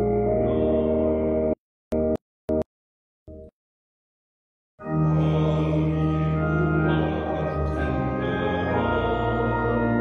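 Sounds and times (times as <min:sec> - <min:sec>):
pipe organ chord: 0:00.0 - 0:02.1, 0:04.8 - 0:10.0.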